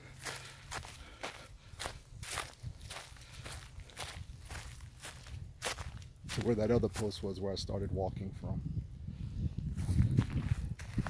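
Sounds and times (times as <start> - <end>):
footsteps on grass and dry leaves: 0.0 - 8.0, 9.6 - 11.0.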